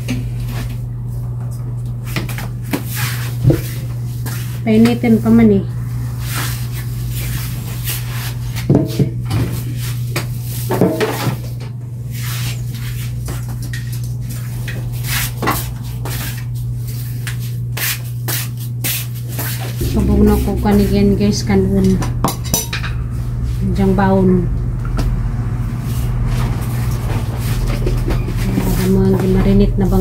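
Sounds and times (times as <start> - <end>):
steady low hum: 3.3 - 9.3, 19.8 - 26.2.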